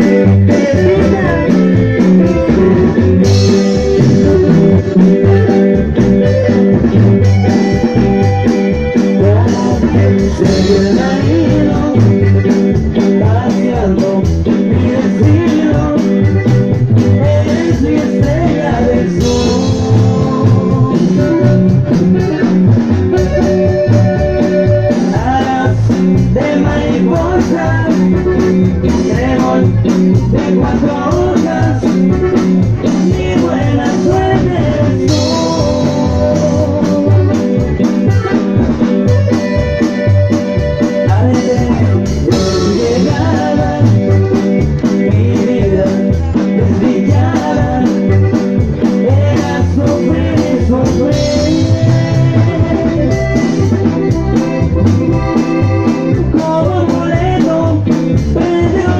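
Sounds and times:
electronic keyboard sustained notes: 0.0s - 26.5s
drum kit: 0.0s - 58.9s
live dance band through speakers: 0.0s - 58.9s
pulsing bass beat: 0.0s - 58.9s.

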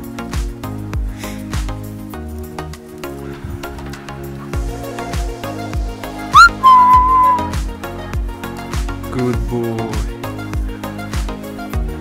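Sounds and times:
background music with steady beat: 0.0s - 12.0s
loud whistle: 6.4s - 7.6s.

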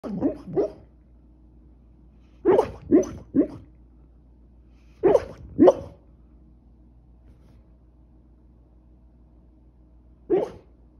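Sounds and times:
dog barking softly in sleep: 2.4s - 3.7s, 5.0s - 6.0s, 10.3s - 10.7s.

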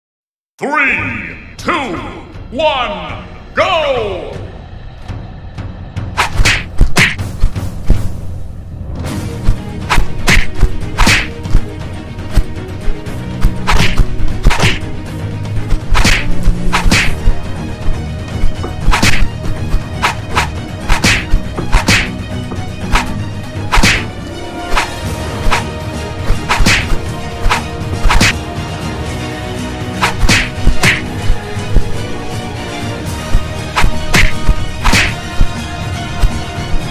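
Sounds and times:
fight soundtrack music: 1.1s - 36.9s
whooshing swishes: 6.1s - 8.4s, 9.2s - 11.7s, 12.3s - 14.8s, 15.6s - 22.2s, 22.8s - 28.4s, 30.0s - 32.0s, 33.2s - 36.9s
punch thumps: 6.2s - 8.1s, 9.5s - 11.6s, 13.4s - 14.8s, 15.7s - 17.3s, 18.4s - 22.2s, 22.8s - 24.1s, 26.3s - 28.4s, 30.0s - 31.9s, 33.3s - 35.6s.

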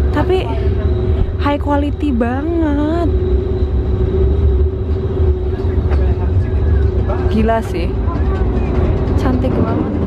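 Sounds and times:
ferry engines rumbling: 0.0s - 10.0s.

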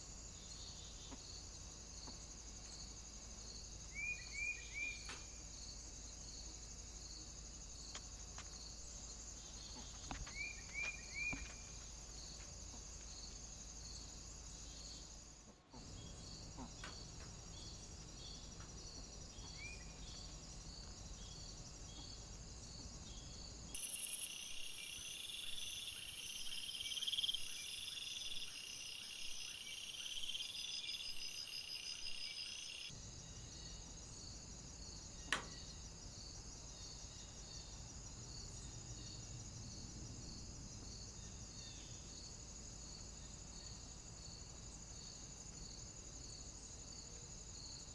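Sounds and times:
crickets chorus: 0.0s - 47.9s
insects chirping: 0.0s - 47.9s.

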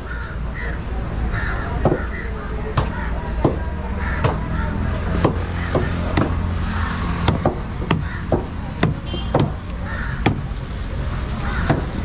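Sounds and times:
bird calls: 0.0s - 7.1s
low outdoor rumble: 0.0s - 12.0s.

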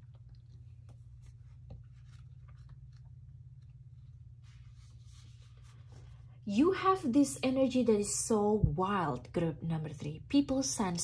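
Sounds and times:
soft clicks and rustles: 0.0s - 6.1s
faint low hum: 0.0s - 11.0s.

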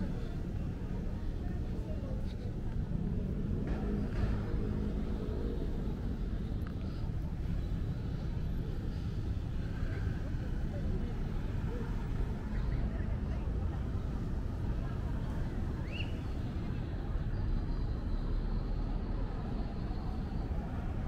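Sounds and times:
low rumble of road traffic: 0.0s - 21.0s.

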